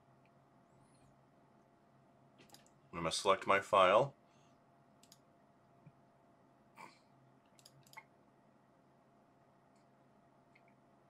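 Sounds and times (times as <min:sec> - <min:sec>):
computer mouse click: 0:02.4 - 0:02.8, 0:05.0 - 0:05.3, 0:07.5 - 0:08.1.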